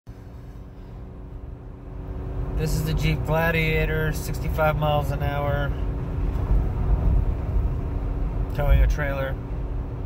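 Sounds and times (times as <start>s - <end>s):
engine and road rumble: 0.1s - 10.0s
engine hum: 0.1s - 10.0s.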